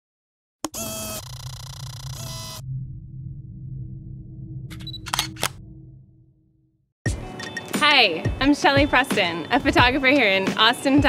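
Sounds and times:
low rumble: 0:02.2 - 0:06.9.

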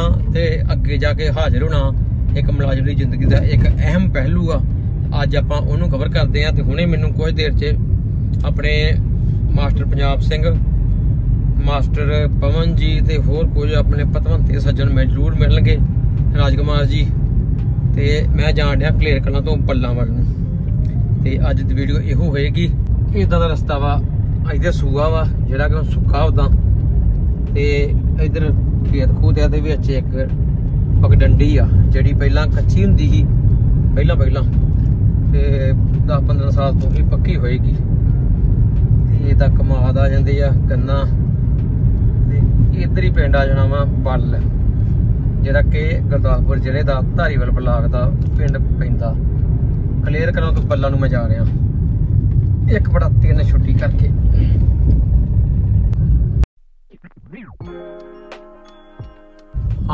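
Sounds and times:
car engine and tyres rumbling: 0:00.0 - 0:59.9
sliding musical tones: 0:57.1 - 0:59.9.

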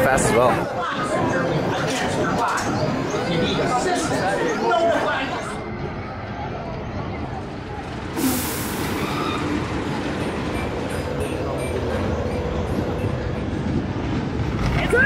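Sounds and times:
murmur of voices: 0:00.0 - 0:15.0
roller coaster cars rumbling on track: 0:00.0 - 0:15.0
air hissing: 0:08.2 - 0:09.2.

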